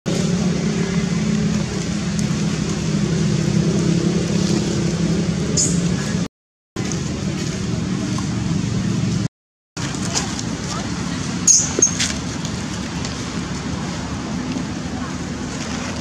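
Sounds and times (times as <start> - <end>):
loud motor drone: 0.1 - 9.3.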